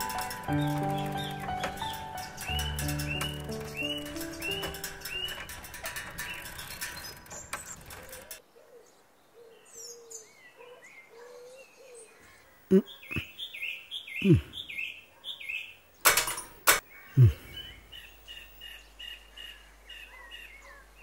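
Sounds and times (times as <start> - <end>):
background music: 0.0 - 5.5
birds chirping: 0.0 - 21.0
man grunting exclamations: 12.7 - 13.2, 14.2 - 14.6, 17.2 - 17.5.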